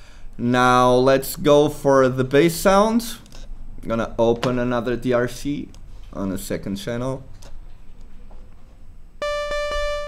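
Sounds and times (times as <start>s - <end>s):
bright buzzy synthesizer note: 9.2s - 10.0s.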